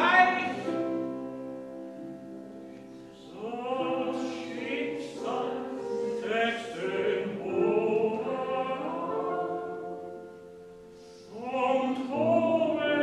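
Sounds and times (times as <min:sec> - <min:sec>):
tenor voice singing: 0:00.0 - 0:01.0, 0:03.2 - 0:10.0, 0:11.3 - 0:13.0
piano accompaniment: 0:00.0 - 0:13.0.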